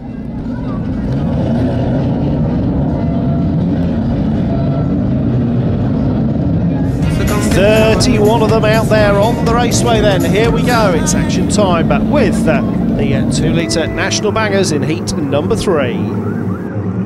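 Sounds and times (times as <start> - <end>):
racing car engines: 0.0 - 17.0
commentator talking: 6.9 - 16.2.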